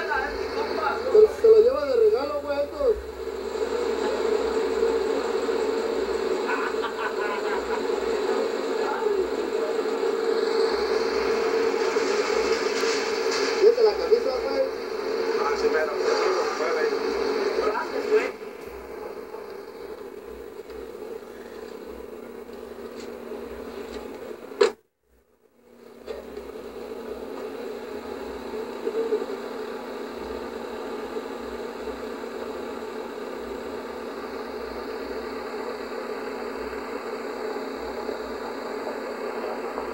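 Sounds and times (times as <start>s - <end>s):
car engine humming: 0.0s - 24.6s.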